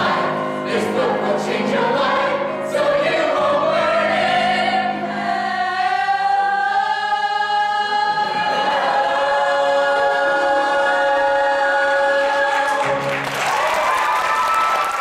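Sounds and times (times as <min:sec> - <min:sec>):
mixed voices singing together: 0:00.0 - 0:13.3.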